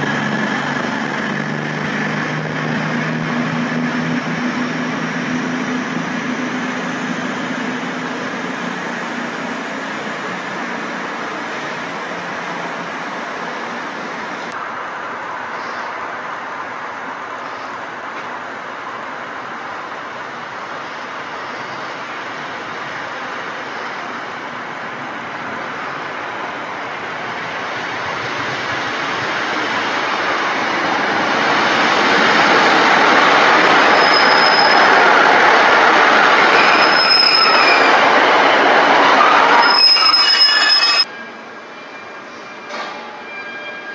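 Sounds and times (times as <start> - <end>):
train wheels rumbling on rail: 0.0 - 43.9
short high-pitched squeals: 33.8 - 35.0, 36.5 - 38.1, 39.1 - 43.9.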